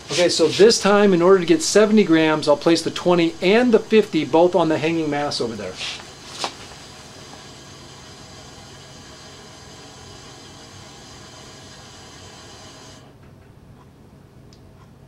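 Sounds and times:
steady hiss: 0.0s - 13.1s
faint humming tones: 0.0s - 15.0s.

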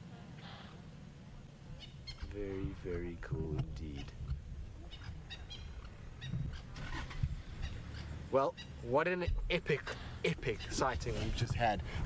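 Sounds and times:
birds calling: 1.7s - 12.0s.

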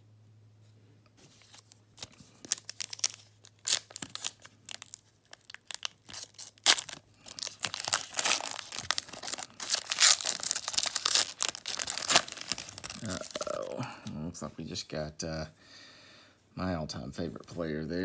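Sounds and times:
foil pack tearing and crinkling: 1.4s - 13.7s.

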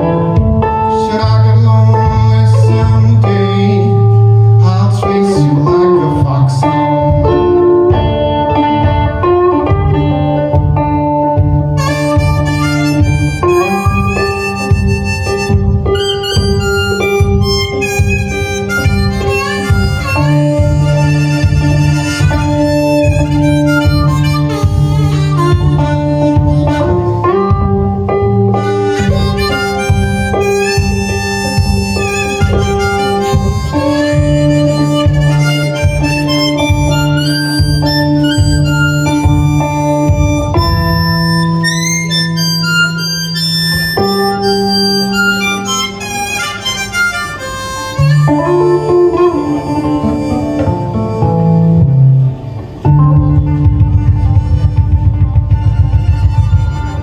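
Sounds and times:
fingerpicked resonator guitar: 0.0s - 57.0s
harmonica bending notes: 0.0s - 57.0s.

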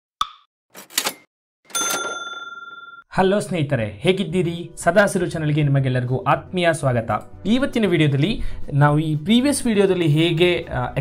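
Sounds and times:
bright ringing ding: 1.7s - 3.1s.

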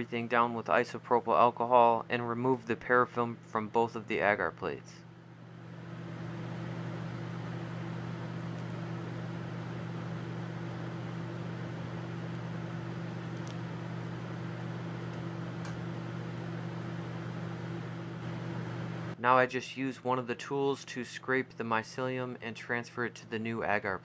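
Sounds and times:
blower fan rushing: 0.0s - 23.1s
low hum: 4.2s - 19.2s.

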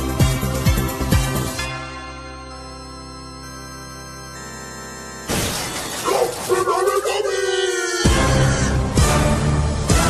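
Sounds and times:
held synth chord: 1.6s - 5.4s
loud glass smash: 5.3s - 6.6s
wobbly pitched voice calling: 6.0s - 8.8s.

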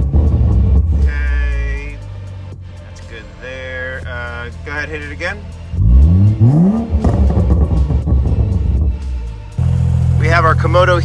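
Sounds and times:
low engine drone: 5.4s - 11.0s
car engine revving hard: 5.8s - 8.9s.

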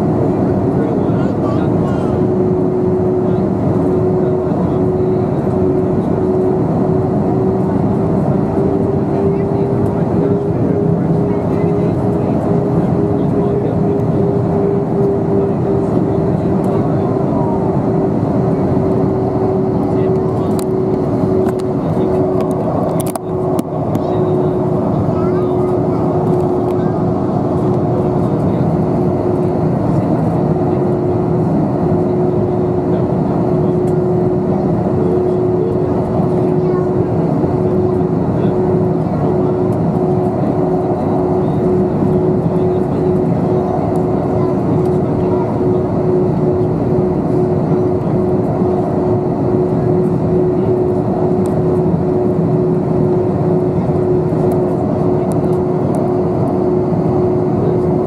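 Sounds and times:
jet engine cabin roar: 0.0s - 58.0s.

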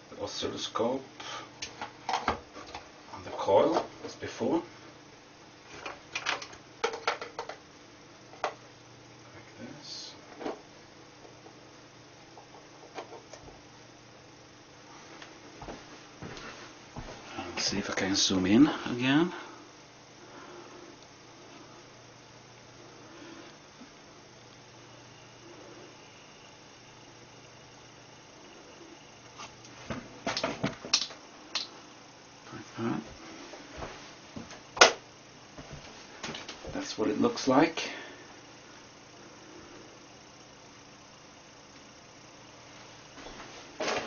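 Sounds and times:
faint steady hum: 0.0s - 44.0s.

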